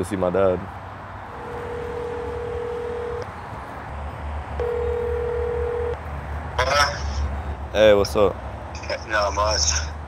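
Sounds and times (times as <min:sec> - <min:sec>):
telephone ringback tone: 0:01.4 - 0:03.2, 0:04.6 - 0:06.0.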